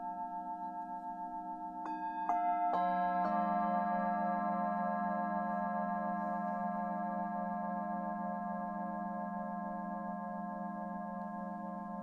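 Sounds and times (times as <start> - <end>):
singing bowls ringing: 0.0 - 12.0.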